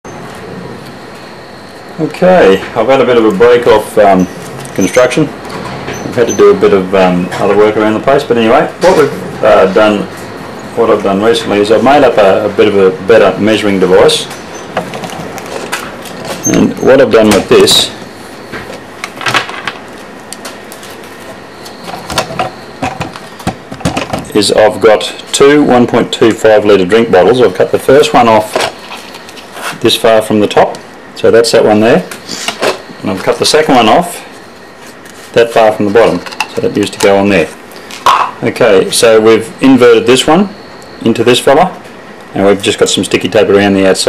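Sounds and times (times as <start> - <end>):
faint high whine: 0.0 - 44.0
steady background noise: 0.0 - 44.0
steady background hiss: 0.1 - 44.0.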